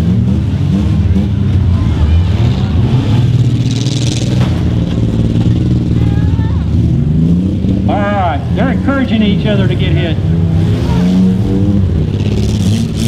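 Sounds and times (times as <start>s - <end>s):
car engines droning: 0.0s - 13.0s.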